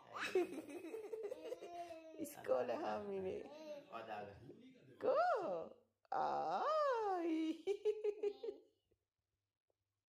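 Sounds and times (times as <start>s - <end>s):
toddler giggling: 0.2s - 2.1s, 8.0s - 8.6s.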